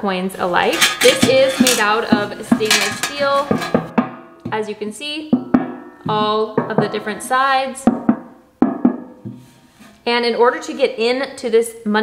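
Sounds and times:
knuckles knocking on metal box: 0.8s - 4.6s, 5.4s - 7.1s, 7.9s - 9.4s.

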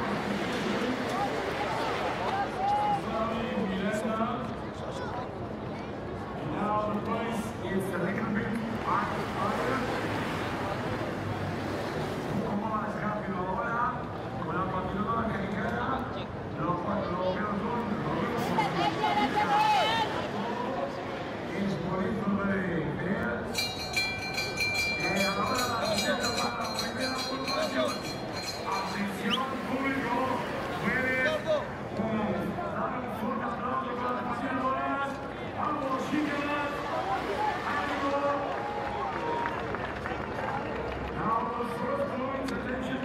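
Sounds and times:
crowd noise: 0.0s - 43.0s
spectators shouting: 18.9s - 20.3s
bell ringing rapidly: 23.5s - 29.6s.

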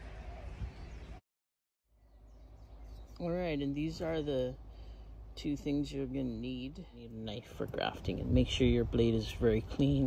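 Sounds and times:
faint outdoor background noise: 1.9s - 10.0s.

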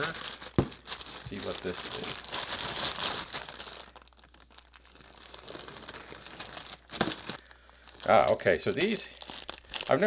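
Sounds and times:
plastic packaging crinkling: 0.0s - 10.0s.

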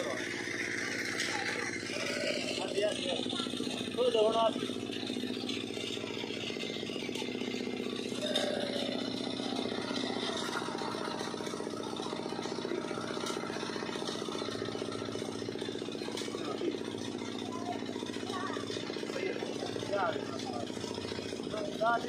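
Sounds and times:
engine running: 0.0s - 22.0s.

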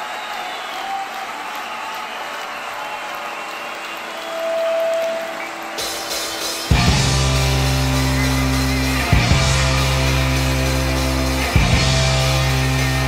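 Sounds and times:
applause-like noise: 0.0s - 13.0s
rock band playing loudly: 5.7s - 13.0s.

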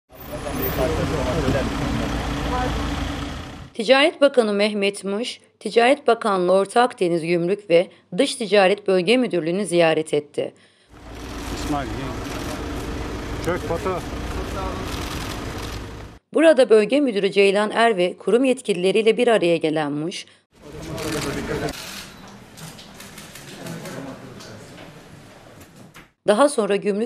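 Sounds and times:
vehicle engines idling: 0.1s - 3.7s, 11.0s - 16.2s
people talking: 0.2s - 2.8s, 11.6s - 12.2s, 13.4s - 14.9s, 16.4s - 21.8s, 26.3s - 27.0s
voices talking: 0.2s - 3.2s, 11.4s - 15.7s.

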